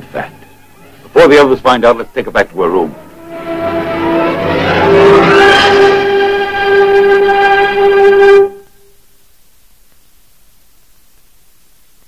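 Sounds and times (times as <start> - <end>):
loud held film-score note: 2.2 - 8.8.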